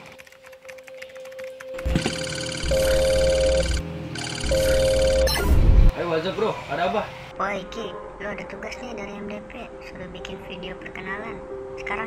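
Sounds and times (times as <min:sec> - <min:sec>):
smartwatch ringtone: 0:01.8 - 0:05.6.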